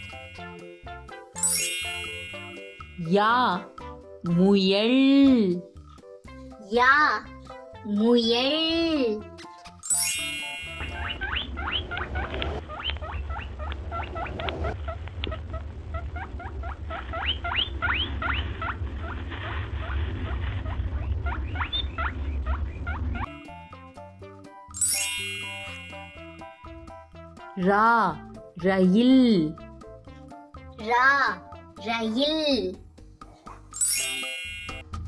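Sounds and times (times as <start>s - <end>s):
bright chime: 0.0s - 3.3s, 9.8s - 11.2s, 24.7s - 26.8s, 33.8s - 34.9s.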